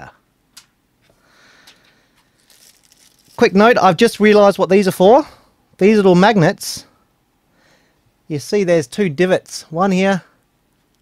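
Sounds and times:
plastic packaging crinkling: 2.2 - 3.5.

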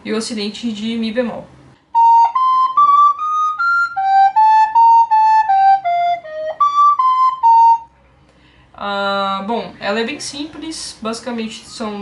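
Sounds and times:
recorder playing a scale: 1.9 - 8.0.

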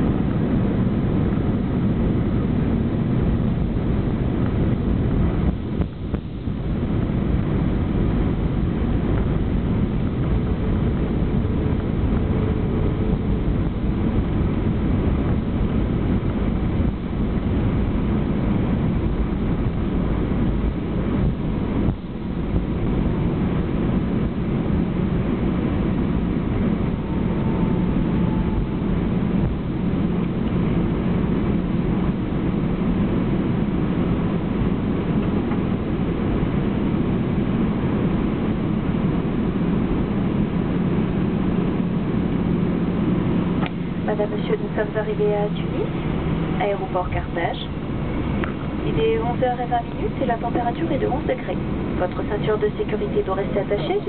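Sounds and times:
airplane cabin rumble on runway: 0.0 - 54.0.

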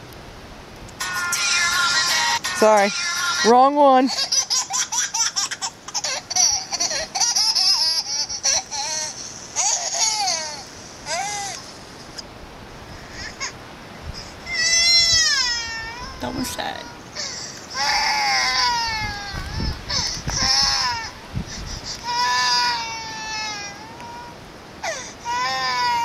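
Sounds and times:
baby wailing cry: 1.2 - 11.6, 14.2 - 21.2, 21.8 - 26.0.

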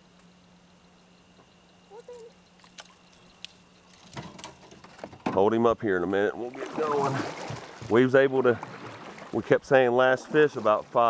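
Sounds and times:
faint low hum: 0.0 - 11.0
faint voice: 1.9 - 2.4.

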